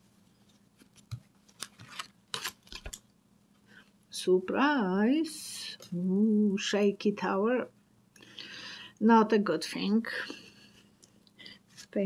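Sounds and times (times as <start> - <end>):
cards clicking and snapping: 0.8 - 3.1.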